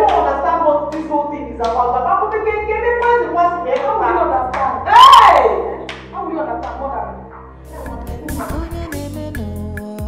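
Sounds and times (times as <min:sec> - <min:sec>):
hand claps: 0:00.0 - 0:00.3, 0:00.9 - 0:01.9, 0:04.5 - 0:04.7, 0:05.8 - 0:06.8.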